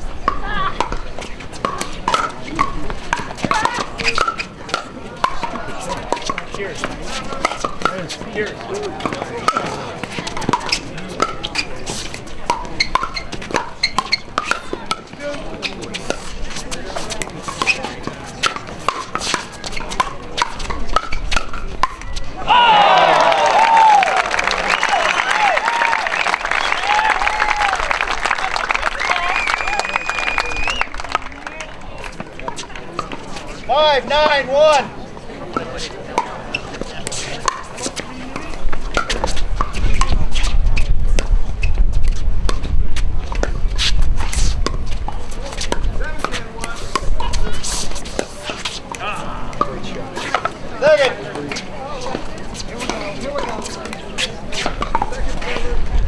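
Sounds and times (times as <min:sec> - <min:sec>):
spectators murmuring: 0:00.0 - 0:56.0
paddles hitting plastic ball: 0:17.1 - 0:22.2, 0:36.2 - 0:40.2
crowd cheering and clapping: 0:22.4 - 0:32.3.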